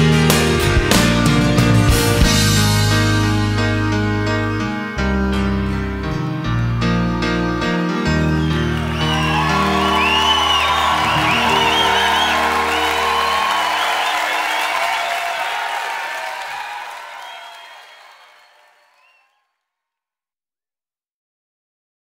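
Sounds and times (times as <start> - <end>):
audience cheering and applauding: 8.2 - 19.4
live band final chord: 8.3 - 16.8.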